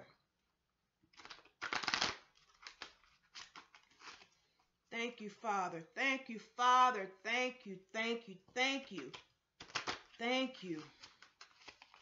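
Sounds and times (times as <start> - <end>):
cards being shuffled: 1.1 - 4.4, 8.8 - 12.0.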